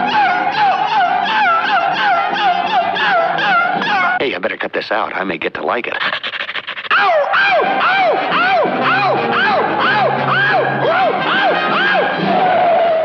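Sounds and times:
cartoon dog yelping: 0:00.0 - 0:04.2, 0:06.0 - 0:12.1.

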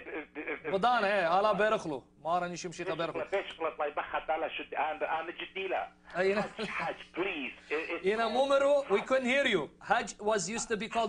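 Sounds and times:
person talking over telephone: 0:02.8 - 0:06.0.

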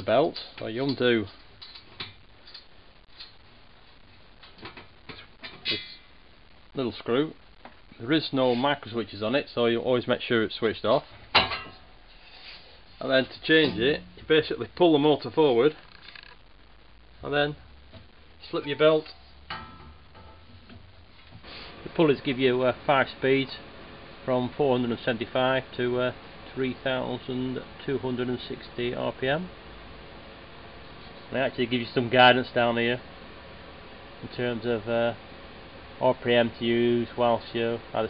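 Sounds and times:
low steady hum: 0:00.0 - 0:38.0
faint clicks and scrapes: 0:15.7 - 0:16.5.

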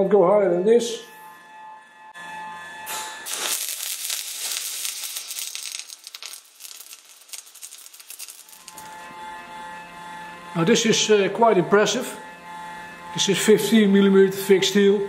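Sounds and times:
welding arc crackling: 0:02.9 - 0:09.4.

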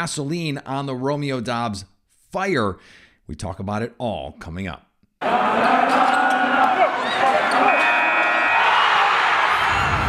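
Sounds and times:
arena crowd noise: 0:05.2 - 0:10.0.

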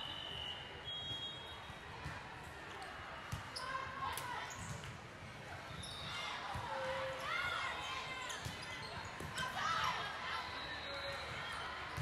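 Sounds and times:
short high whistle: 0:00.0 - 0:01.6.

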